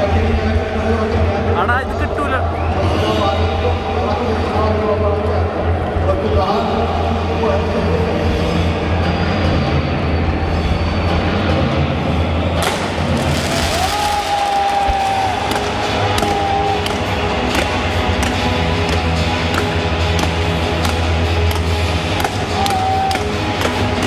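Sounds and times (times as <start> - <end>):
crowd noise: 0.0 - 24.0
music playing: 0.0 - 24.0
firework whistling: 12.6 - 17.1
fireworks cracking and banging: 12.6 - 24.0.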